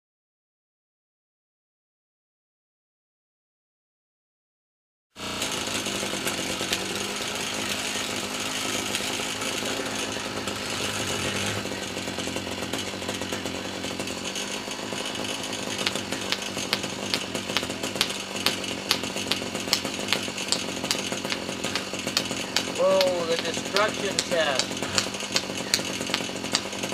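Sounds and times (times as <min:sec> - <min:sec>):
string trimmer engine running: 0:05.2 - 0:26.9
sharp ticks: 0:11.3 - 0:26.9.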